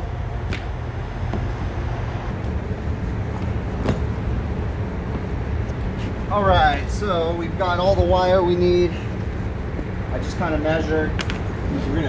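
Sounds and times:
low background rumble: 0.0s - 12.0s.

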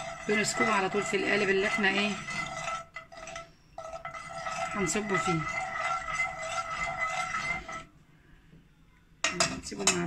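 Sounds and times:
metal spoon stirring in metal pot: 0.0s - 8.0s, 9.2s - 10.0s.

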